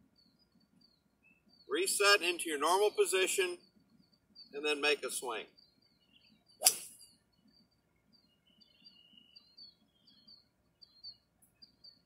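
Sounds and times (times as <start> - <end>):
birds chirping faintly: 0.0 - 12.0
golf club striking ball: 6.6 - 7.0.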